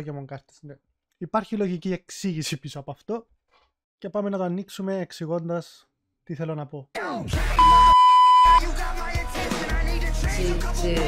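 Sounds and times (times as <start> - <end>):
music with steady beat: 7.4 - 11.0
loud high beep: 7.6 - 8.6.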